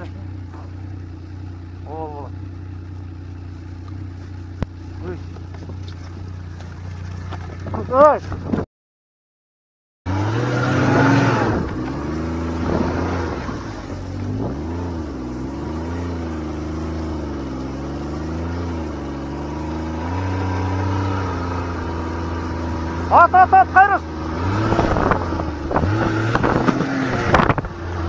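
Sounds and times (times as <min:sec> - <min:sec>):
snowmobile engine running: 0:00.0 - 0:08.3, 0:10.2 - 0:28.0.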